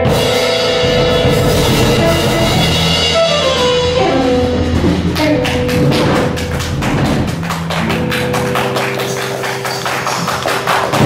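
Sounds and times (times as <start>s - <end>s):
drum kit and cymbals beat: 0.0s - 9.7s
live band playing: 0.0s - 11.0s.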